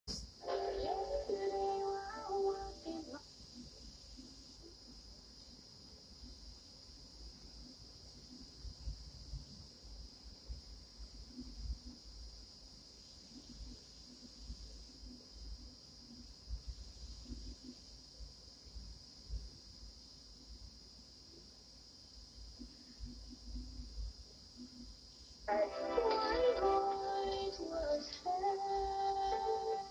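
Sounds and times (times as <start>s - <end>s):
tape hiss: 0.1s - 29.9s
steady musical tones: 0.4s - 3.2s, 25.5s - 29.9s.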